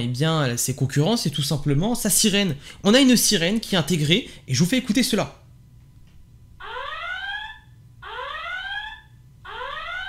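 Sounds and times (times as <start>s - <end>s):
electronic whooping siren: 6.6s - 10.0s.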